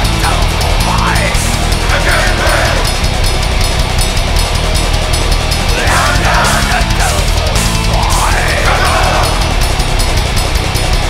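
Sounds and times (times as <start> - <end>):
distorted electric guitars: 0.0 - 11.0
fast drumming: 0.0 - 11.0.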